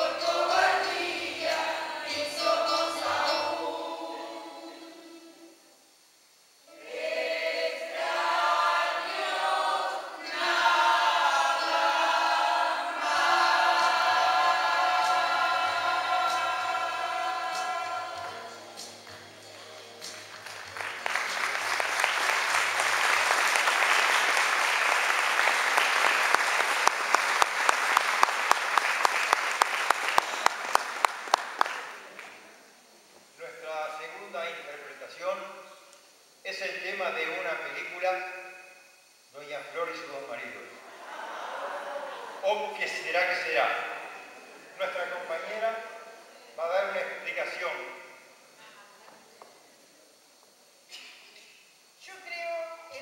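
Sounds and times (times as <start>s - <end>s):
choir singing in harmony: 0.0s - 5.7s, 6.7s - 19.0s
audience applauding: 18.9s - 32.4s.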